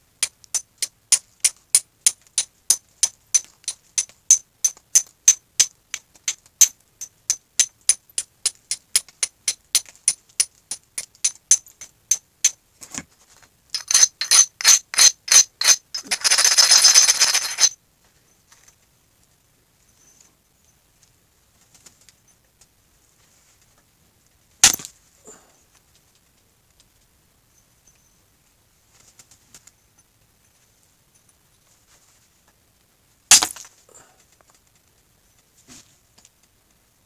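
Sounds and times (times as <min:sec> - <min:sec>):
flint scraping on abrading stone: 0:13.8 - 0:17.7.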